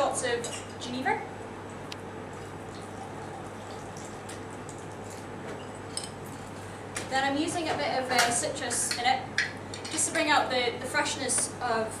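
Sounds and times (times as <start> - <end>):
liquid trickling into a glass: 2.3 - 5.0.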